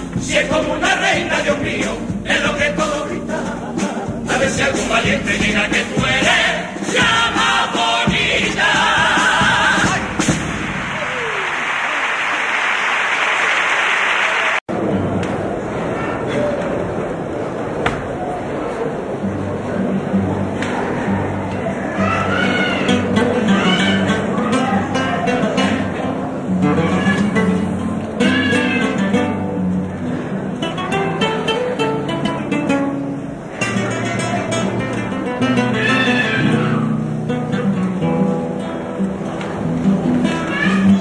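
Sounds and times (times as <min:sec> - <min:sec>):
guitars strumming and picking: 0:00.0 - 0:10.4, 0:19.2 - 0:41.0.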